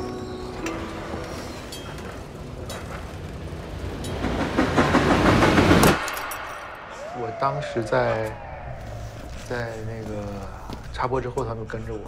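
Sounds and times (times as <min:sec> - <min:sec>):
tram rumbling on rails: 0:00.0 - 0:06.2.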